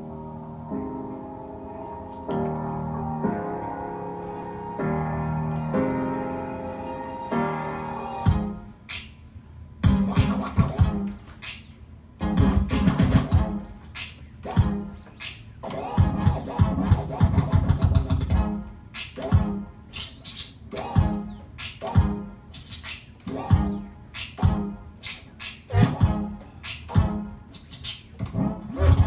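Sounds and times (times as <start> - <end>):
turntable scratching: 1.8 - 29.0.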